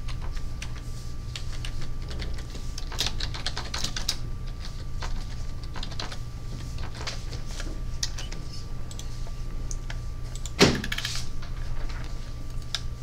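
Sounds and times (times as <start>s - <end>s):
steady low hum: 0.0s - 13.0s
typing on computer keyboard: 1.4s - 4.2s, 5.0s - 6.2s.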